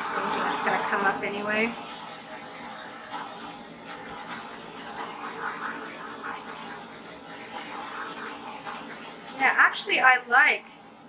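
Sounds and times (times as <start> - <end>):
torch flame hissing: 0.0 - 11.0.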